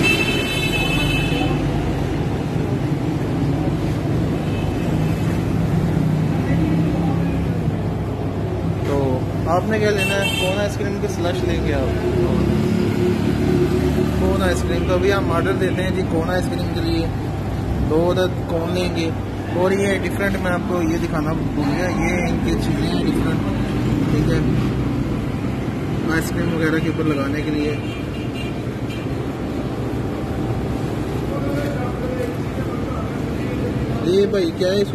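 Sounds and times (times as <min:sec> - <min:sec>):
low rumbling background noise: 0:00.0 - 0:34.9.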